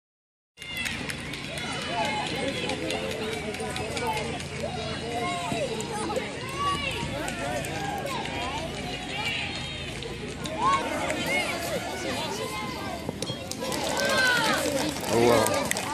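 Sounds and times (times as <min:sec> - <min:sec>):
people shouting and calling out: 0:00.6 - 0:15.9.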